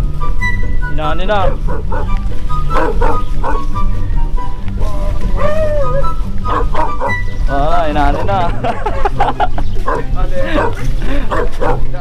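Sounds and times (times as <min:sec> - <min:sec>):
wavering pitched call: 0:00.0 - 0:08.2
background music with bass line: 0:00.0 - 0:12.0
dog barking: 0:01.4 - 0:03.6, 0:06.5 - 0:07.3, 0:09.8 - 0:12.0.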